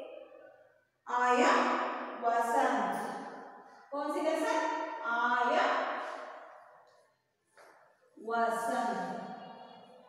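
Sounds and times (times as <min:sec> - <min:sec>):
woman's voice: 0:01.1 - 0:03.1, 0:03.9 - 0:05.8, 0:08.2 - 0:09.1.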